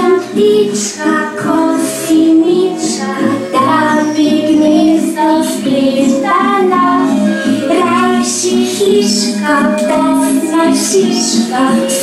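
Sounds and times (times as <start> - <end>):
children singing: 0.0 - 12.0.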